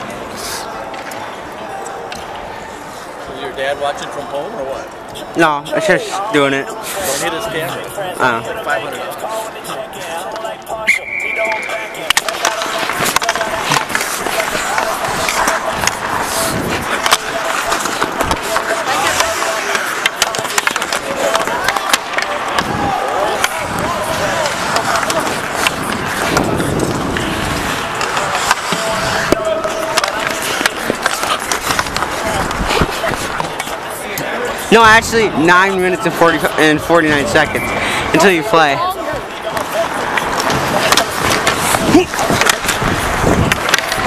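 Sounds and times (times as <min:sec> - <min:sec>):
skate blades scraping ice: 0:09.7 - 0:34.7, 0:39.0 - 0:44.0
stick and puck clicks: 0:10.3 - 0:34.3, 0:39.4 - 0:44.0.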